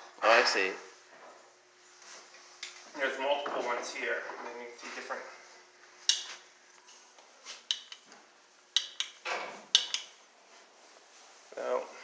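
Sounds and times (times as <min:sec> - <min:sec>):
metallic clinks and knocks: 0:08.8 - 0:10.2.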